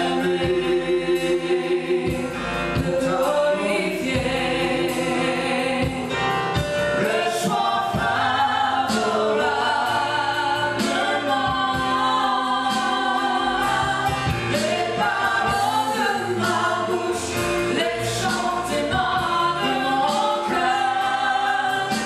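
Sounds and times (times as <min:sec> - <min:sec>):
band playing: 0:00.0 - 0:22.0
voices singing gospel song: 0:00.0 - 0:22.0.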